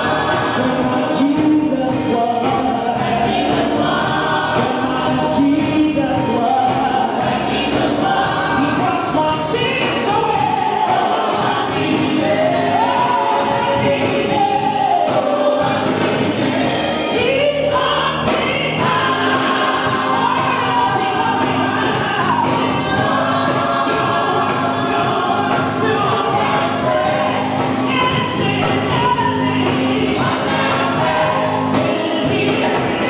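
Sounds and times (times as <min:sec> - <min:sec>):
congregation singing gospel song: 0:00.0 - 0:33.0.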